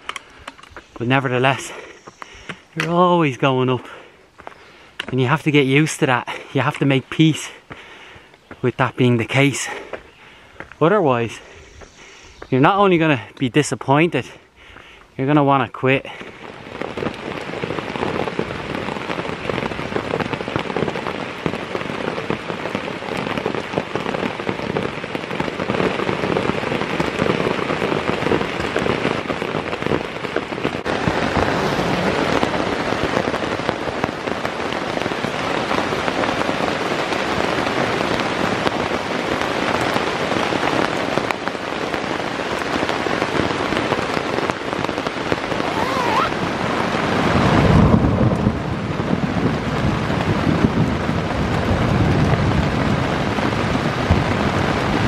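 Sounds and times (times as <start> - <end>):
rain pattering on a tent: 0.0 - 55.0.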